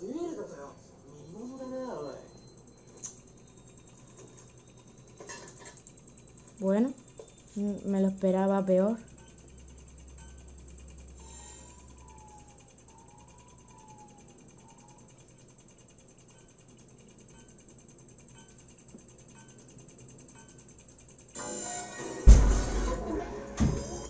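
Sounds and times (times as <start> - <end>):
timer ticking: 5.8 - 21.4
soft wavering tone: 11.2 - 15.3.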